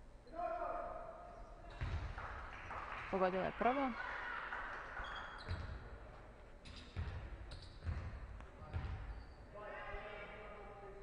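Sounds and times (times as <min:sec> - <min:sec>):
basketball bouncing on wooden floor: 0:01.7 - 0:02.2, 0:05.4 - 0:05.8, 0:06.9 - 0:09.0.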